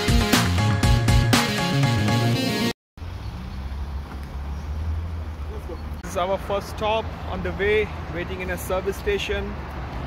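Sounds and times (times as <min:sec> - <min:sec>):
road traffic rumble: 0:03.0 - 0:10.0.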